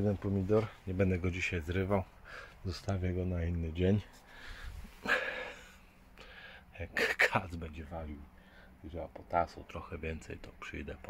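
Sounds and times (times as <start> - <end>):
man breathing: 2.1 - 2.6, 4.2 - 6.7, 8.3 - 8.8.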